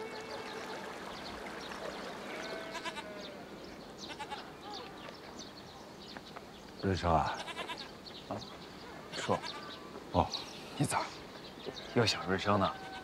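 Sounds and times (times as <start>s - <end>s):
livestock bleating: 2.2s - 3.4s, 4.0s - 4.5s, 7.3s - 7.9s, 9.1s - 9.8s.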